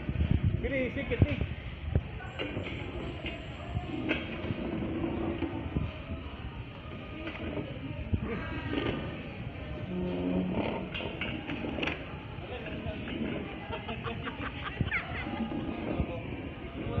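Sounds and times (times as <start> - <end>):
mix of voices: 0.4 - 17.0.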